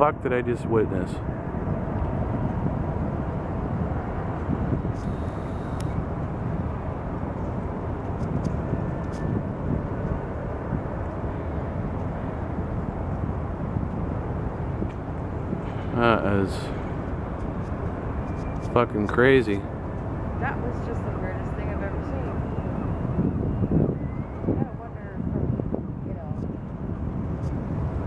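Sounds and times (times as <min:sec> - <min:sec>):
low outdoor rumble: 0:00.0 - 0:28.0.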